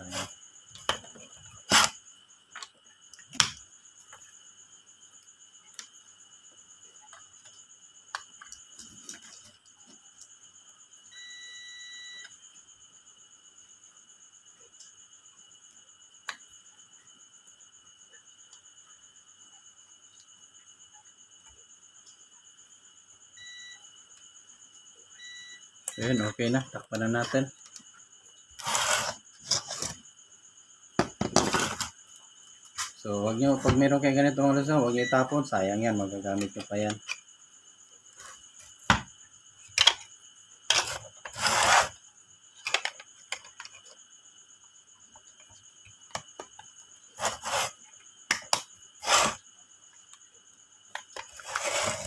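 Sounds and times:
multimeter continuity buzzer beeping: 11.1 - 12.4, 23.4 - 23.9, 25.2 - 26.4.

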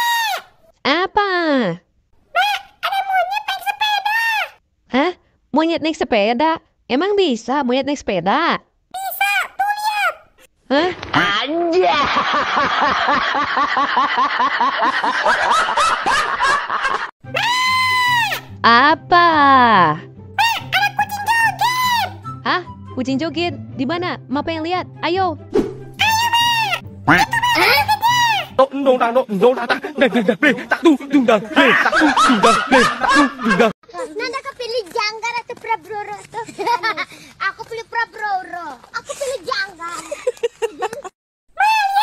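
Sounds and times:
rapid laughter: 29.4 - 33.8.

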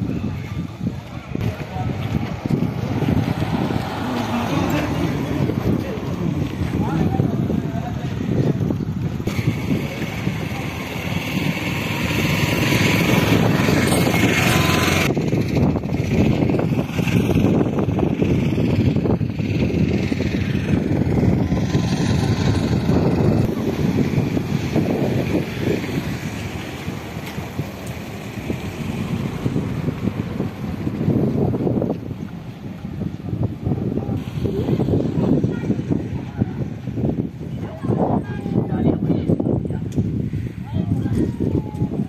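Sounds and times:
road traffic: 0.0 - 42.0
wind rumbling on microphone: 0.0 - 42.0.

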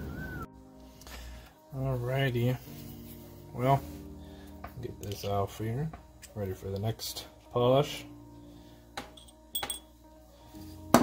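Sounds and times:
background music: 0.0 - 11.0
hard objects clinking on wooden board: 9.0 - 9.9.

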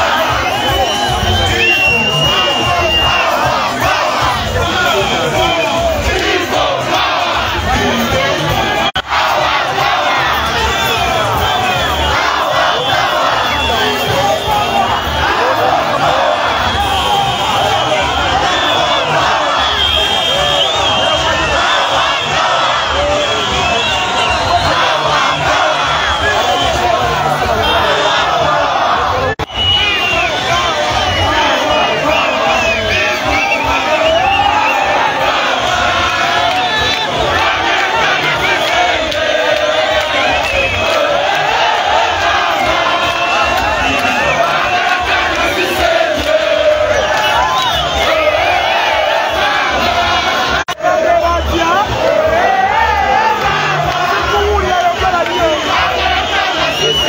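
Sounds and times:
crowd shouting and cheering: 0.0 - 57.0.

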